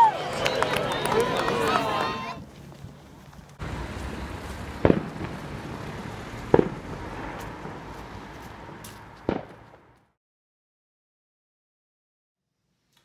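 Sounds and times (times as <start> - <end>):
steady outdoor hiss: 0.0 - 9.9
fireworks bangs: 3.6 - 10.0.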